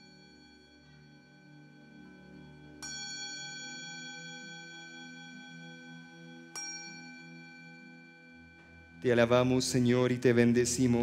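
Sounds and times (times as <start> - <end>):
altar bell ringing: 0.0 - 11.0
soft low instrumental music: 0.0 - 11.0.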